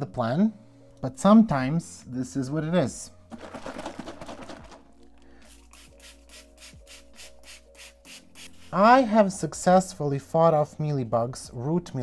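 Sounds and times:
spray bottle squirting: 5.4s - 8.7s.

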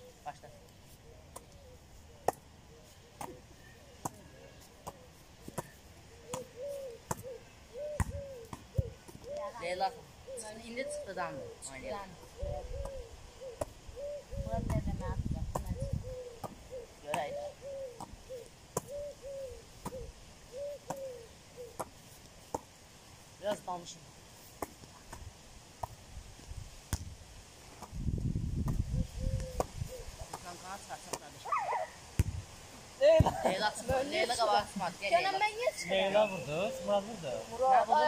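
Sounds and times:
volleyball slaps: 4.8s - 7.3s, 8.0s - 9.3s, 25.8s - 26.0s, 26.9s - 27.1s, 29.5s - 31.4s, 32.2s - 32.4s
bird low hooting call: 6.1s - 9.6s, 12.4s - 14.6s, 15.8s - 21.8s, 28.9s - 30.1s, 36.3s - 37.0s
voices: 9.2s - 13.1s, 33.0s - 38.0s.

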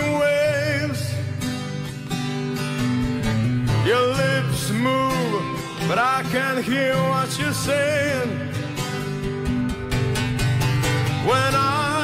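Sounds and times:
man singing: 0.0s - 1.8s, 3.7s - 9.4s, 11.0s - 12.0s
acoustic guitar chords: 0.0s - 12.0s.

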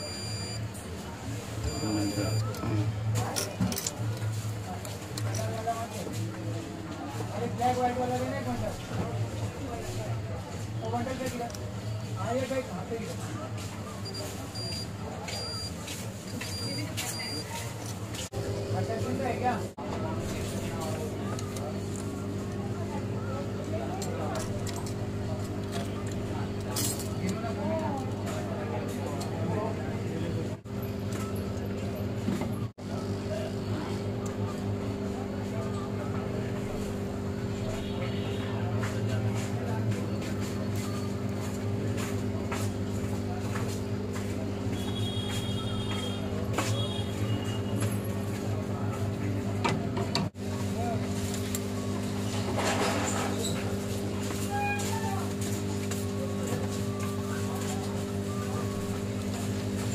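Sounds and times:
multimeter continuity beeps: 0.0s - 0.7s, 1.6s - 2.6s, 14.0s - 17.6s.

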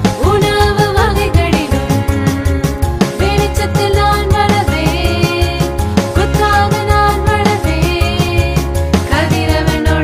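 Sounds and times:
bright backing track with beat: 0.0s - 10.0s.

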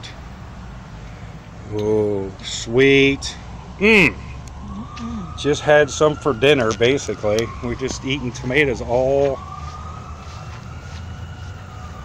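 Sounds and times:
distant siren wail: 0.0s - 12.0s
low steady rumble: 0.0s - 12.0s.

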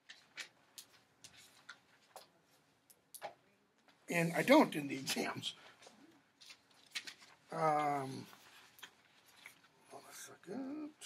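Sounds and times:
paper rustling: 0.0s - 2.7s, 4.4s - 10.0s.

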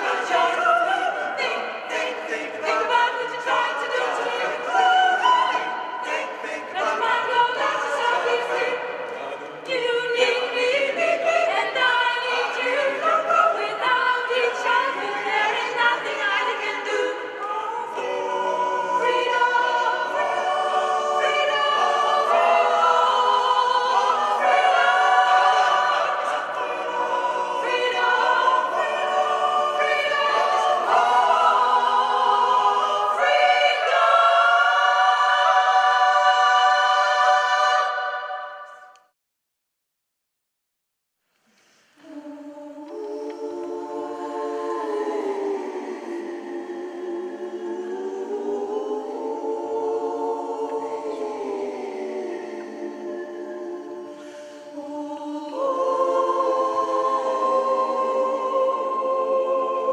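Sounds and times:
mixed choir singing a cappella: 0.0s - 39.0s, 41.6s - 59.9s.

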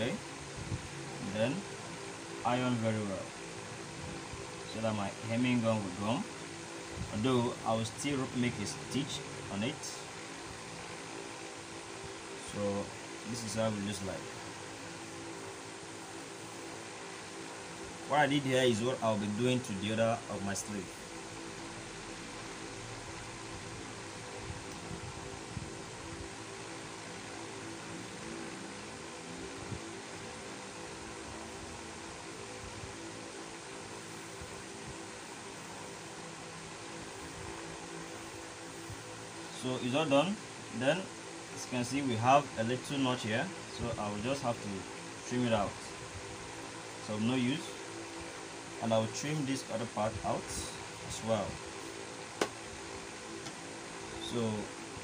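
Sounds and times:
steady background hum and hiss: 0.0s - 55.0s.

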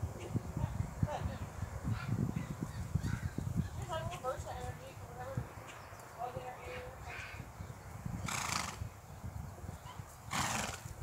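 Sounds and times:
soft hoofbeats on grass: 0.1s - 11.0s
horse snorting: 8.2s - 8.9s, 10.3s - 11.0s.

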